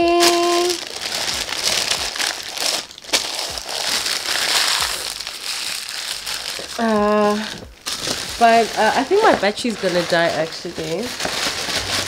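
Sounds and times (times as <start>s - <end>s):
tissue paper crinkling: 0.0s - 12.0s.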